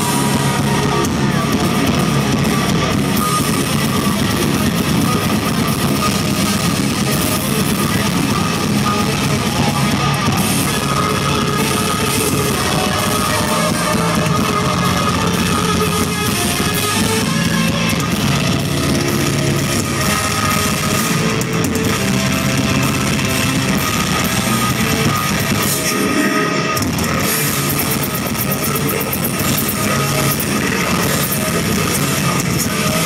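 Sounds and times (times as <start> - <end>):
distorted electric guitars: 0.0 - 33.0
drum kit: 0.0 - 33.0.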